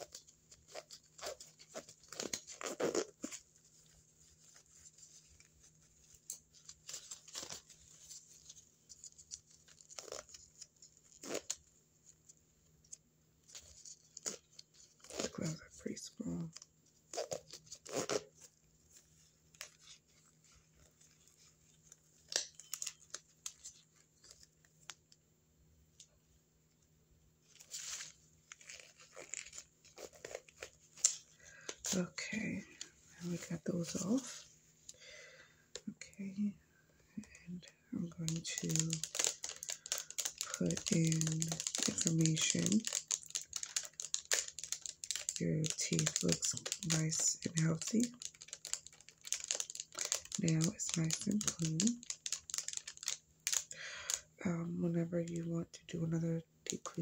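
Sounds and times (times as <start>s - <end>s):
gloves crinkling and snapping: 0.0s - 25.2s, 27.5s - 35.0s, 37.2s - 54.3s.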